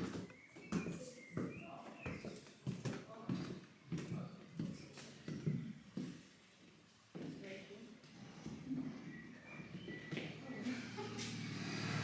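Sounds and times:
footsteps on wooden stairs: 0.0 - 7.4, 8.4 - 11.4.

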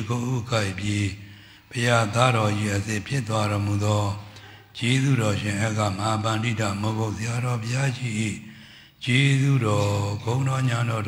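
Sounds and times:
person chanting in monotone: 0.0 - 11.0.

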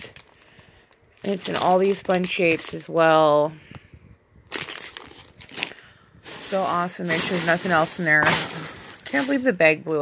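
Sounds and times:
plastic packaging crinkling: 0.0 - 2.9, 4.5 - 9.6
shredded paper rustling: 1.3 - 2.8, 4.6 - 9.6.

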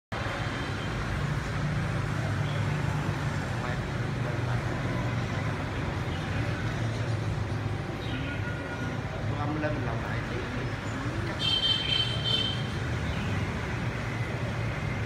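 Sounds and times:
street traffic hum: 0.1 - 15.0.

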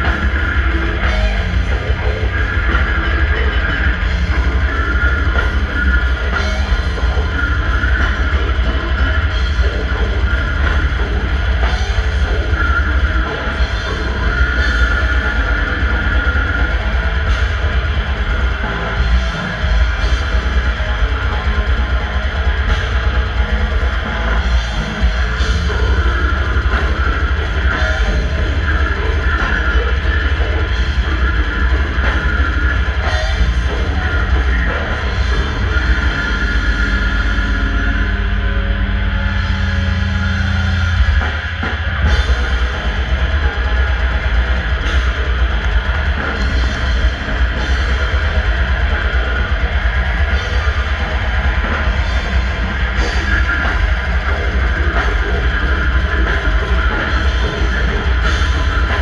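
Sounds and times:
distorted electric guitars: 0.0 - 59.0
fast drumming and cymbals: 0.0 - 59.0.

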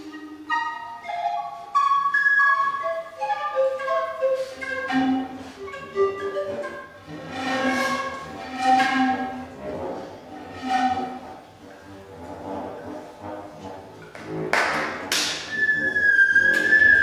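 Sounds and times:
panpipes: 0.0 - 11.5, 12.1 - 17.0
viola: 0.0 - 17.0.

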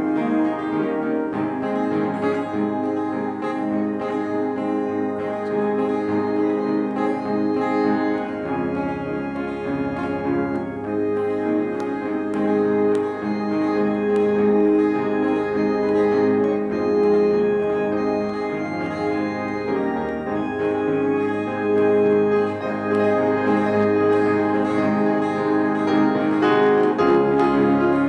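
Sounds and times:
strummed acoustic guitar: 0.0 - 28.0
sustained keyboard chords: 0.0 - 28.0.

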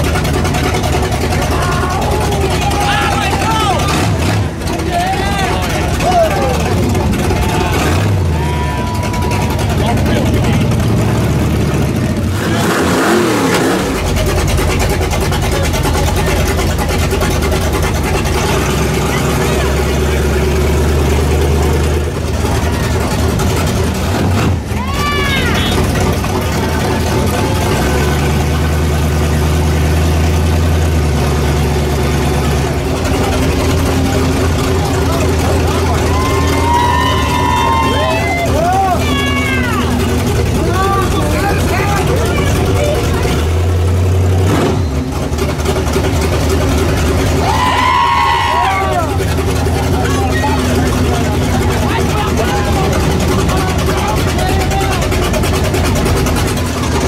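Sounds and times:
monster truck engine droning: 0.0 - 57.0
people shouting and whooping: 1.3 - 10.8, 24.6 - 26.1, 34.7 - 43.0, 47.2 - 55.2.

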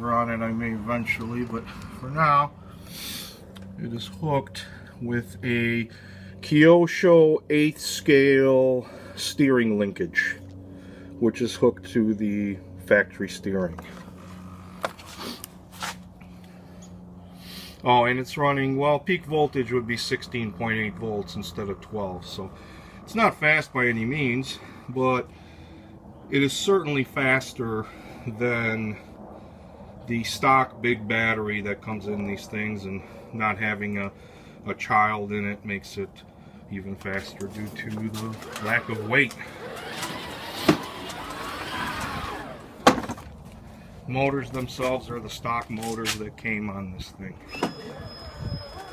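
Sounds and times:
low hum: 0.0 - 48.9.

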